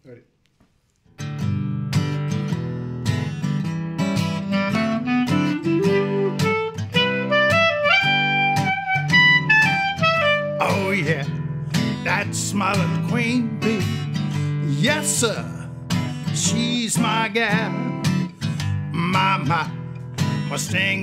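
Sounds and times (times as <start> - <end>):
acoustic guitar strumming chords: 1.2 - 21.0
clarinet melody: 4.2 - 11.4.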